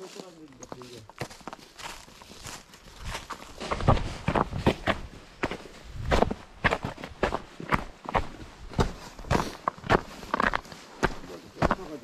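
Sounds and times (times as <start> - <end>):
footsteps crunching through dry leaves: 0.0 - 8.0.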